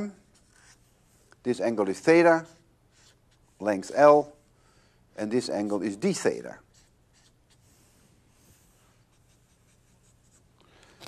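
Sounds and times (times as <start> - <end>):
marker strokes on paper: 0.0 - 4.4, 5.5 - 10.5.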